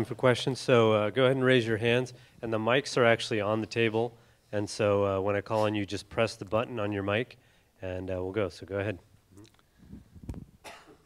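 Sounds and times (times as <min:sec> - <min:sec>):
faint cough: 0:10.6 - 0:11.0.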